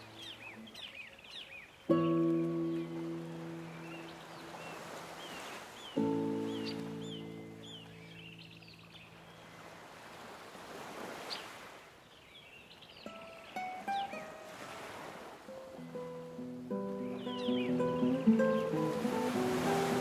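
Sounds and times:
small birds chirping: 0:00.0 - 0:09.8, 0:11.2 - 0:14.5, 0:15.7 - 0:20.0
ocean waves: 0:00.0 - 0:20.0
classical guitar chords: 0:01.8 - 0:09.5, 0:13.0 - 0:20.0.

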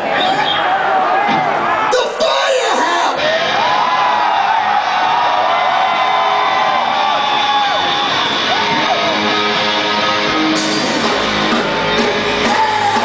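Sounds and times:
crowd cheering and whooping: 0:00.0 - 0:13.0.

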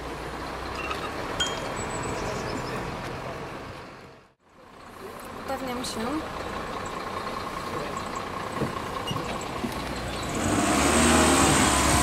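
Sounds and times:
road traffic noise: 0:00.0 - 0:12.0
high chime-like pings: 0:00.8 - 0:01.7.

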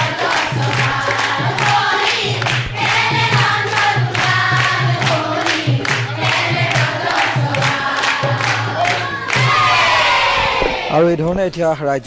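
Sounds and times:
hands clapping in time: 0:00.0 - 0:10.0
women singing in chorus: 0:00.0 - 0:10.9.

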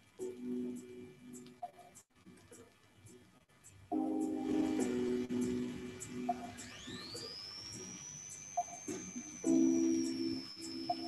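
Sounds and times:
countdown timer ticks: 0:00.0 - 0:11.0
thin high whistle-like tone: 0:04.5 - 0:11.0.

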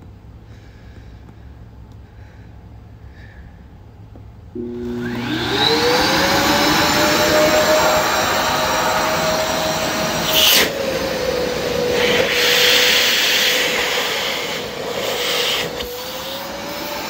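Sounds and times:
air rushing: 0:04.6 - 0:17.0
vacuum motor whining: 0:04.6 - 0:17.0.

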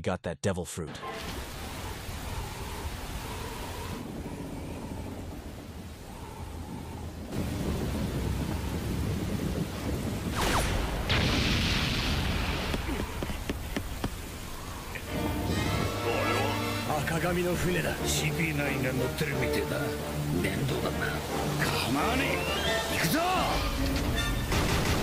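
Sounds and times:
rumbling hissing storm noise: 0:01.2 - 0:25.0.

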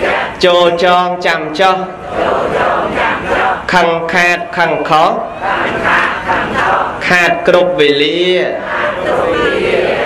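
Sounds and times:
crowd reciting in unison: 0:00.0 - 0:10.0.

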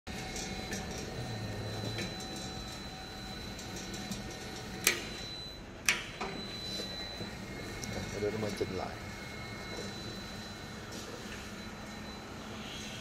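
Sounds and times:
machine motor humming: 0:06.2 - 0:12.9
faint high whine: 0:06.2 - 0:13.0.

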